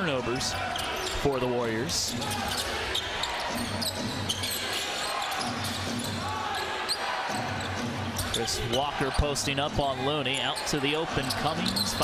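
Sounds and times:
murmur of arena crowd: 0:00.0 - 0:12.0
sneaker squeaks: 0:00.6 - 0:01.5, 0:02.2 - 0:09.3, 0:10.2 - 0:12.0.

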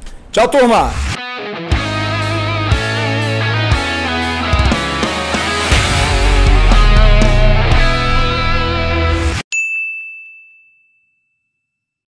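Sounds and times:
rock music: 0:01.0 - 0:09.4
bright ding chime: 0:09.5 - 0:11.8.

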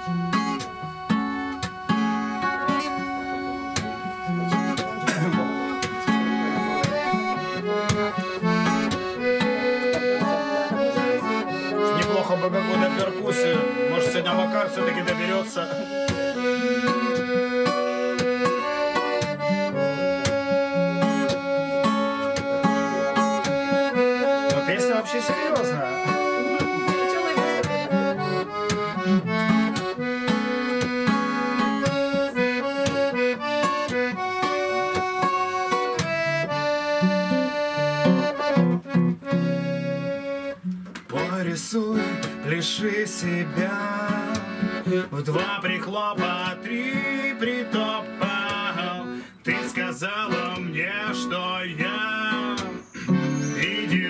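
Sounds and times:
accordion melody: 0:00.0 - 0:54.0
strummed acoustic guitar: 0:00.0 - 0:54.0.

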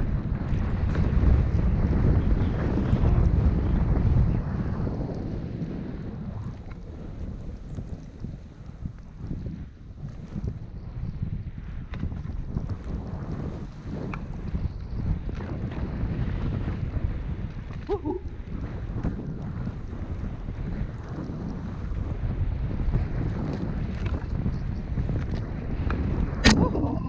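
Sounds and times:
wind buffeting microphone: 0:00.0 - 0:27.0
light clicks of skis and poles: 0:06.6 - 0:09.4, 0:11.9 - 0:14.6, 0:23.2 - 0:26.1.

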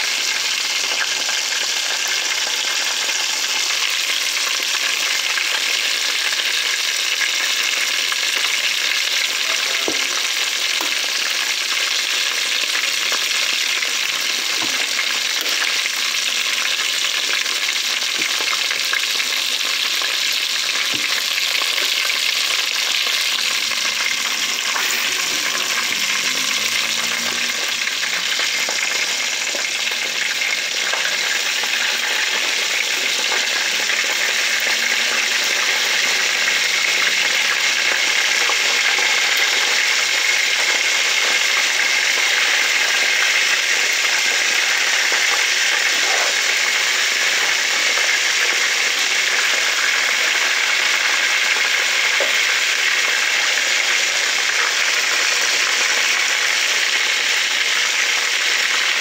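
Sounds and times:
chicken frying in hot oil: 0:00.0 - 0:59.0.

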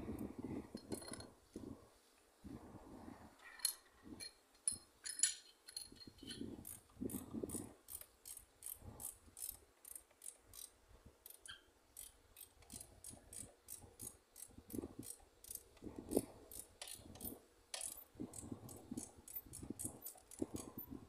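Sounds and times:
ratchet clicking: 0:04.7 - 0:21.0.

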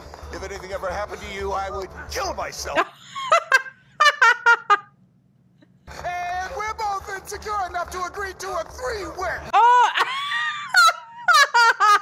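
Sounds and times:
woman laughing: 0:02.8 - 0:04.9, 0:09.6 - 0:12.0.

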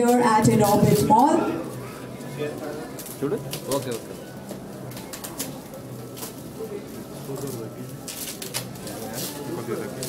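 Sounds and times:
faint murmuring voices: 0:00.0 - 0:10.0
foil gift wrap crinkling and tearing: 0:06.1 - 0:10.0.

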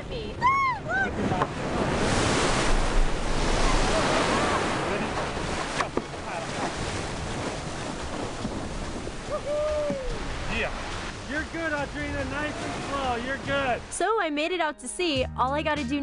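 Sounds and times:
ocean surf breaking: 0:00.0 - 0:14.3.

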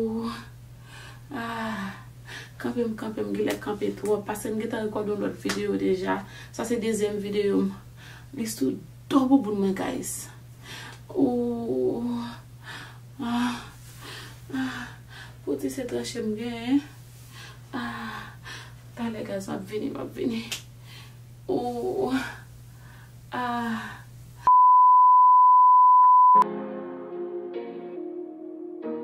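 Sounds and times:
loud steady high beep: 0:24.5 - 0:26.4
soft music with sustained tones: 0:26.4 - 0:29.0.

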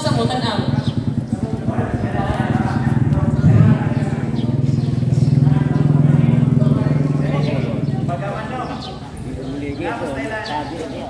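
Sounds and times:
motor vehicle engine passing: 0:00.0 - 0:11.0.

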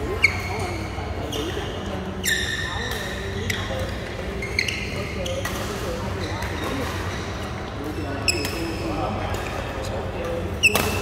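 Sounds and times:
hum of large hall: 0:00.0 - 0:11.0.

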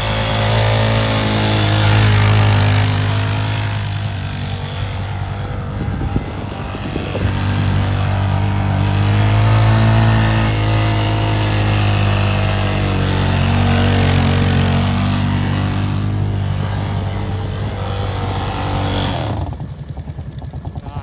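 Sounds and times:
atv engine running hard: 0:00.0 - 0:21.0
wheels spinning through snow: 0:00.0 - 0:21.0.

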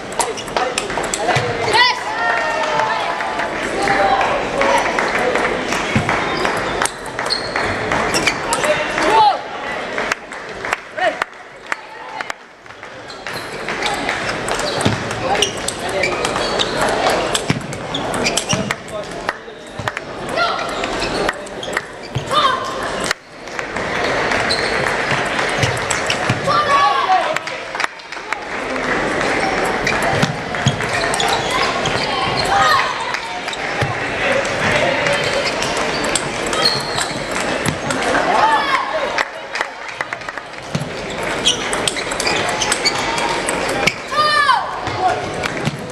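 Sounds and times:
hubbub of voices: 0:00.0 - 0:45.9
table tennis balls clicking: 0:12.6 - 0:26.5, 0:33.5 - 0:38.2, 0:40.1 - 0:44.1.

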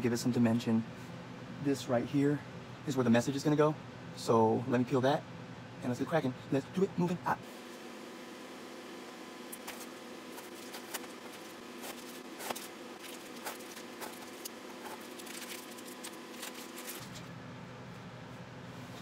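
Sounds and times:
stencil mask peeling off: 0:09.5 - 0:17.3.

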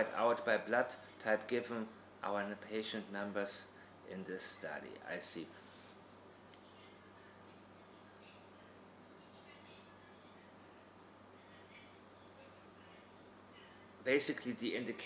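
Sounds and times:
faint high-pitched whine: 0:00.0 - 0:15.0.

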